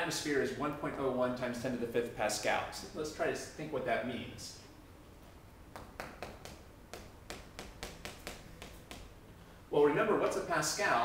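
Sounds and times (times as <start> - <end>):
chalk tapping and scraping on chalkboard: 5.8 - 9.1.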